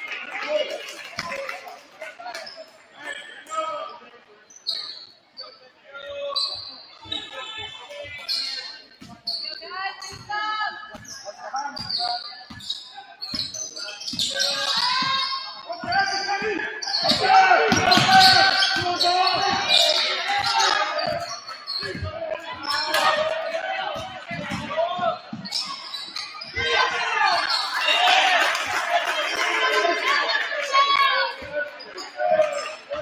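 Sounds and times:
voices in gym: 0.0s - 33.0s
sneaker squeaks: 4.5s - 28.4s, 30.8s - 33.0s.

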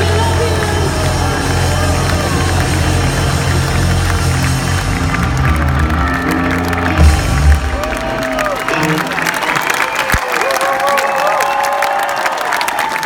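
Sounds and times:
rock band chords ringing out: 0.0s - 9.5s
crowd cheering and clapping: 0.0s - 13.0s.

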